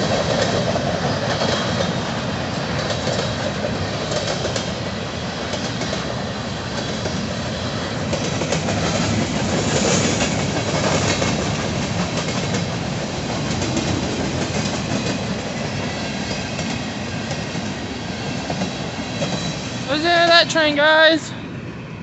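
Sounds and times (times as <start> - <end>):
train wheels rumbling on rail: 0.0 - 22.0
wheels clicking over rail joints: 8.0 - 17.8.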